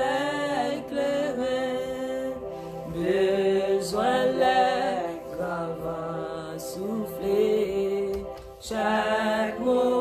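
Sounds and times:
woman singing worship song: 0.0 - 10.0.

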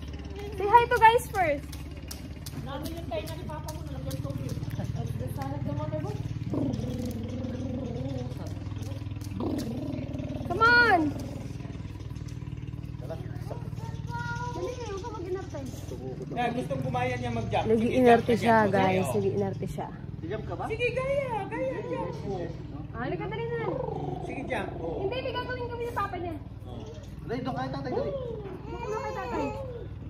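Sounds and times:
steady low hum: 0.0 - 28.6
child whining and crying: 28.2 - 30.0.

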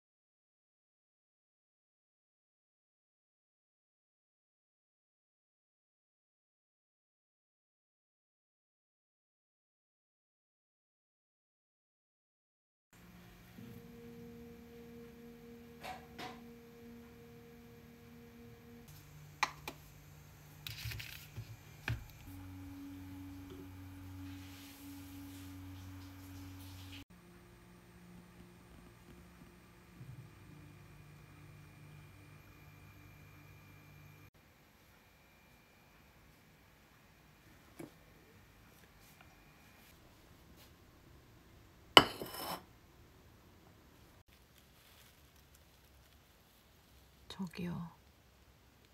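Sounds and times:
soft sustained pure tones: 13.0 - 39.9
glassware clinking: 42.0 - 42.6.

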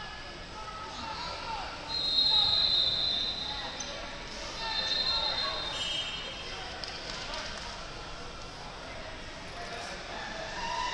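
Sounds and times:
crowd voices and hubbub: 0.0 - 10.9
high whistle blast: 1.9 - 3.6.

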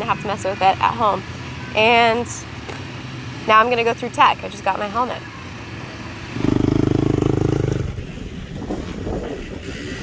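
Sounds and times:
background pit noise: 6.3 - 9.6
dirt bike engine running: 6.4 - 8.3.

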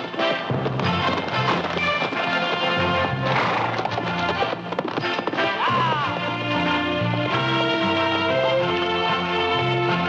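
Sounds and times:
film score music: 0.0 - 10.0
hoofbeats: 0.0 - 10.0.

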